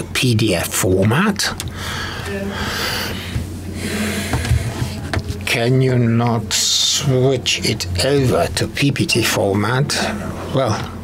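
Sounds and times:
sound system hum: 0.0 - 11.0.

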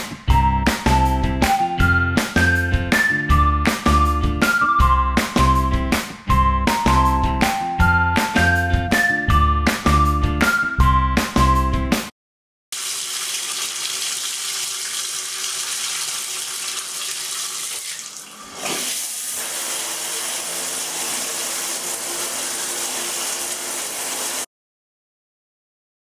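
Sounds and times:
bathtub faucet running: 12.8 - 24.5
shower spraying against tiles: 12.8 - 24.5.

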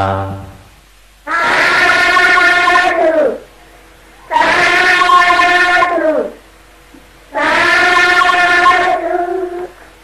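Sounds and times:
person chanting long calls: 0.0 - 0.6.

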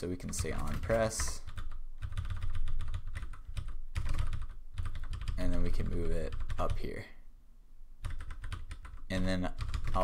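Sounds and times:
fast typing on keyboard: 0.2 - 6.8, 8.0 - 10.0.

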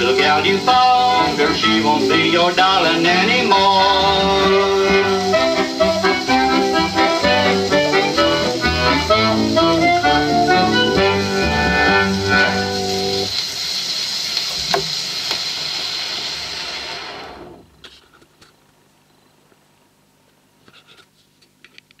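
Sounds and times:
square-dance band final chord: 0.0 - 13.3
record surface hiss and crackle: 0.0 - 22.0
faint hum: 17.1 - 22.0.

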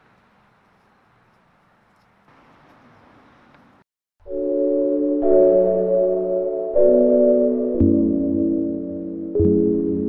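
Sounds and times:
ambient synthesizer chords: 4.3 - 10.0.

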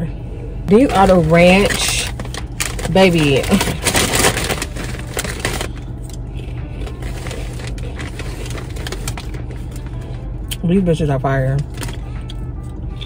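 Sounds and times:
low car hum: 0.0 - 13.0
foil chip bag crinkling: 0.7 - 10.2, 11.6 - 12.4.

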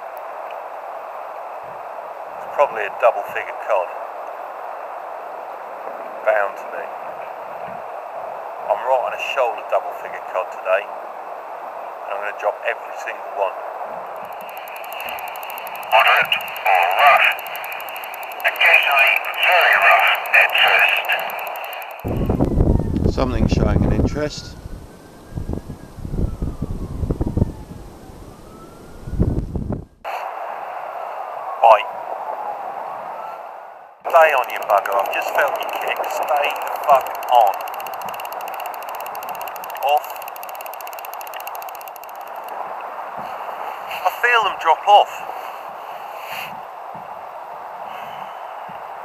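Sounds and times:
fast regular ticking: 14.1 - 22.6, 34.1 - 42.6
radio hiss: 14.4 - 22.4, 34.1 - 37.7
tinny voice from radio speaker: 15.9 - 17.6, 18.4 - 22.0, 34.1 - 37.6
wind buffeting microphone: 22.0 - 30.0.

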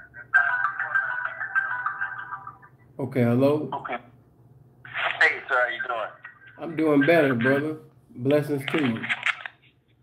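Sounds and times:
tinny music over telephone line: 0.0 - 2.9.

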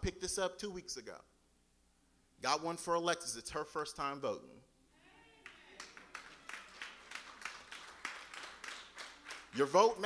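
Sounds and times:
faint scattered clapping: 5.4 - 10.0.

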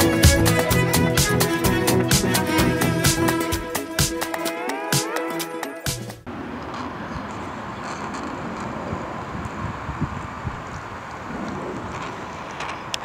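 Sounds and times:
background music: 0.0 - 6.3
wind on microphone: 7.2 - 13.0.

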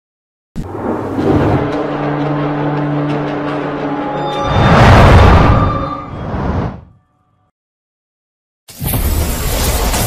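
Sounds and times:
rushing noise: 0.6 - 6.9.

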